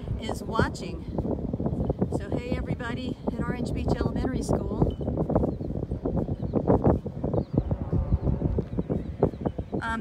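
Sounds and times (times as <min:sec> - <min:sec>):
low thumps and knocks: 0:00.0 - 0:10.0.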